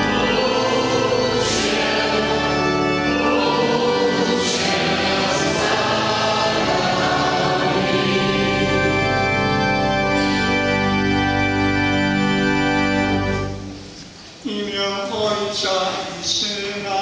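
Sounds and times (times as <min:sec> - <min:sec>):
voices singing a hymn: 0:00.0 - 0:10.6
pipe organ: 0:00.0 - 0:15.3.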